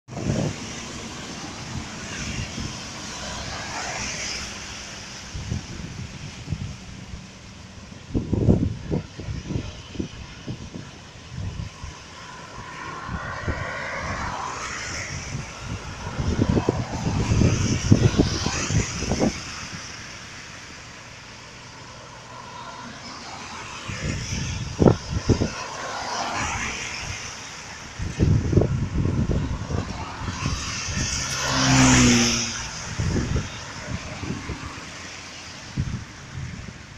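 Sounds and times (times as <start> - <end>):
wind buffeting microphone: 0.1 - 22.0, 23.2 - 36.9
cars passing on wet road: 0.1 - 36.9.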